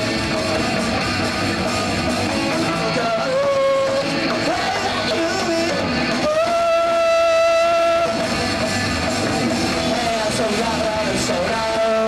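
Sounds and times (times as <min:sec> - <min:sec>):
punk rock band playing: 0:00.0 - 0:12.0.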